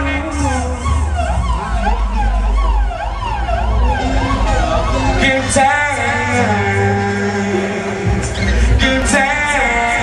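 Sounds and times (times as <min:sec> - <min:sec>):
dub siren sweeping: 0:00.0 - 0:07.1
deep bass of sound system: 0:00.0 - 0:10.0.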